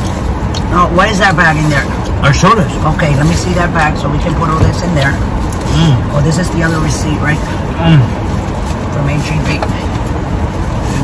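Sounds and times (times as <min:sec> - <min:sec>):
rushing noise in car cabin: 0:00.0 - 0:11.0.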